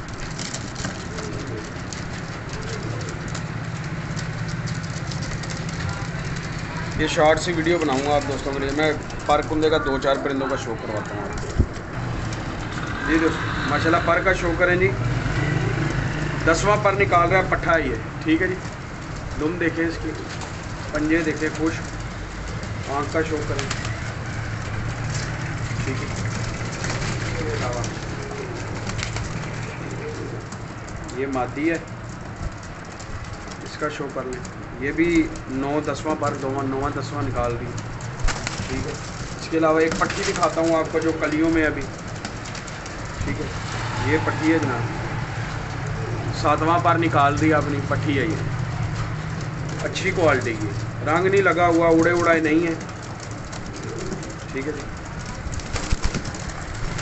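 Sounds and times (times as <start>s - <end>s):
pigeons cooing: 0.0s - 57.0s.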